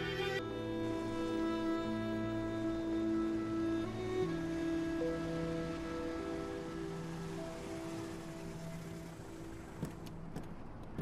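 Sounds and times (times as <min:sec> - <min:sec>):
soft string music: 0:00.0 - 0:11.0
car pulling up: 0:05.3 - 0:11.0.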